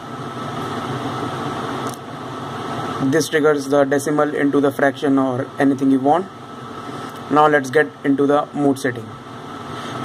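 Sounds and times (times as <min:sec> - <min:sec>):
faint constant hum: 0:00.0 - 0:10.0.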